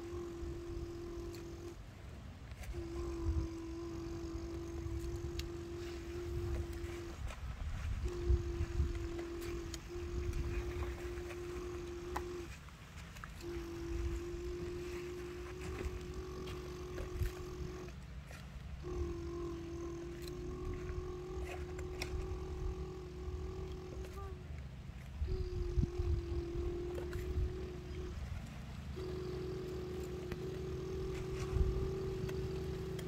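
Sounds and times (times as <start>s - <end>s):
low rumbling noise: 0.0s - 33.0s
person humming engine imitation: 0.0s - 33.0s.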